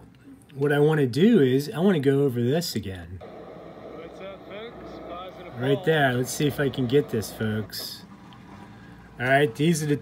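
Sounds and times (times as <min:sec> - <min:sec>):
road traffic rush: 0:03.2 - 0:10.0.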